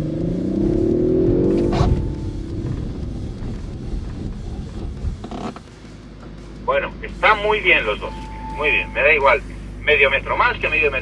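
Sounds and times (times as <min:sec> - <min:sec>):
car engines accelerating: 0:00.0 - 0:11.0
tyres rumbling on snow: 0:00.0 - 0:11.0.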